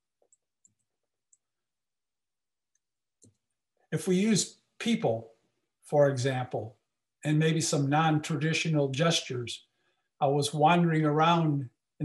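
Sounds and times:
man speaking: 0:04.0 - 0:05.3, 0:05.9 - 0:09.6, 0:10.2 - 0:11.7.

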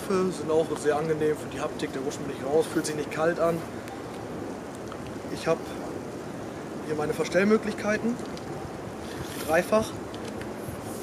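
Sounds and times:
wind noise on microphone: 0:00.0 - 0:11.0.

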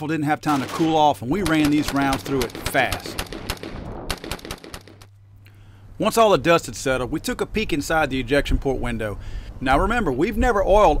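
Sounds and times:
rifle firing rapid shots: 0:00.5 - 0:05.1.

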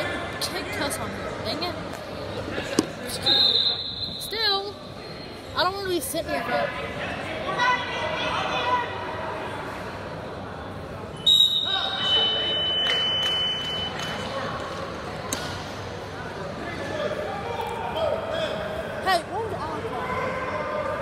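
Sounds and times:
referee's whistle blast: 0:03.2 - 0:04.3, 0:11.2 - 0:13.9.

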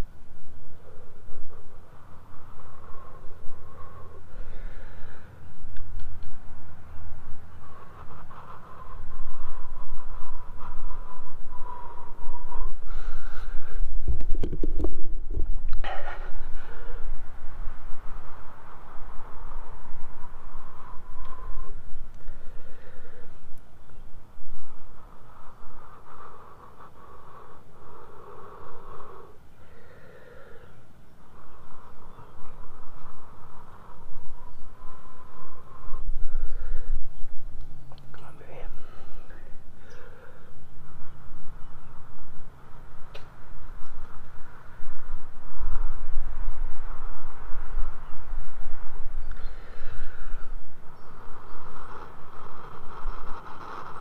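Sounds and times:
person blowing long breaths: 0:00.8 - 0:05.9, 0:07.5 - 0:14.2, 0:15.8 - 0:23.5, 0:24.6 - 0:37.2, 0:38.9 - 0:41.4, 0:49.2 - 0:52.3.

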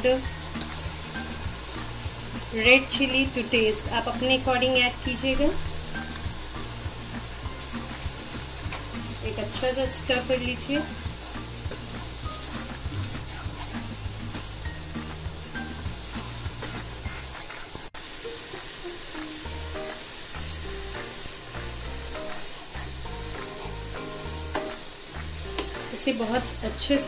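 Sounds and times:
masala sizzling in hot oil: 0:00.0 - 0:27.0.

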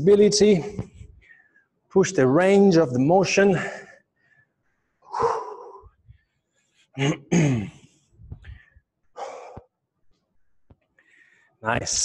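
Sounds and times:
man clearing throat: 0:07.0 - 0:07.9.

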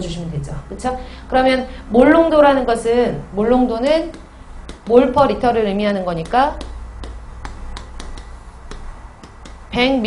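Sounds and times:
chalk tapping on blackboard: 0:03.9 - 0:09.9.

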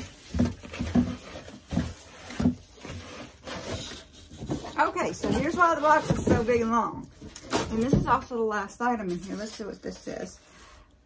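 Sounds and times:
rustling in cardboard box: 0:00.0 - 0:10.8.

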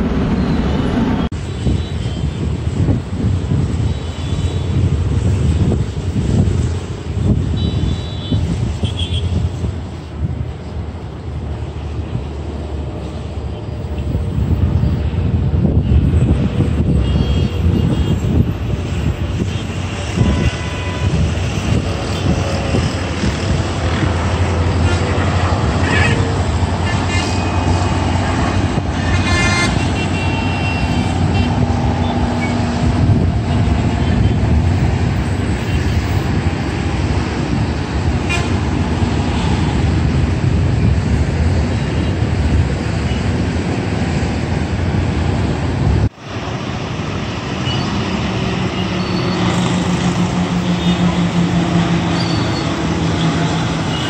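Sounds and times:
jet engine whine: 0:00.0 - 0:08.2
jet engines rumbling: 0:00.0 - 0:54.0.

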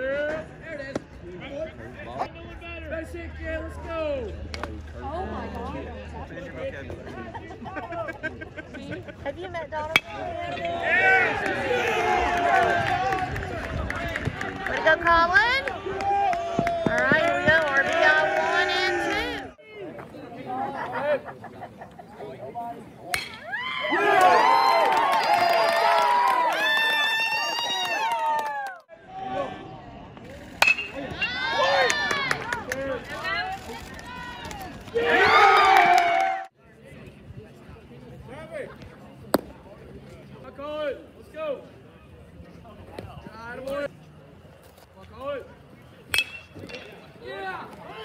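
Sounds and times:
metal bat hitting ball: 0:09.9 - 0:10.2, 0:23.1 - 0:23.4, 0:30.6 - 0:31.0, 0:46.1 - 0:47.0
crowd shouting and cheering: 0:09.9 - 0:20.0, 0:23.1 - 0:30.0, 0:30.6 - 0:36.5.

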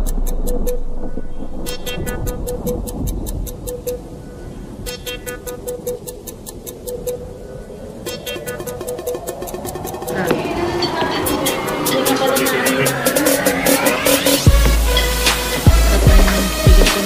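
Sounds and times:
music with fast ticking beat: 0:00.0 - 0:00.9, 0:01.6 - 0:04.1, 0:04.9 - 0:07.4, 0:08.0 - 0:17.0.

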